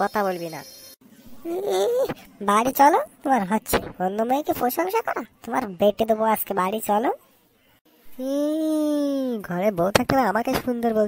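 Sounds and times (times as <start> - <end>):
cartoon character voice talking: 1.4 - 6.7.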